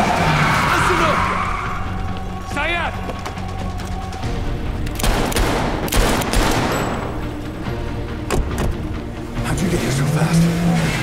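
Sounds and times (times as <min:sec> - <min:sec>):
film music score: 0:00.0 - 0:11.0.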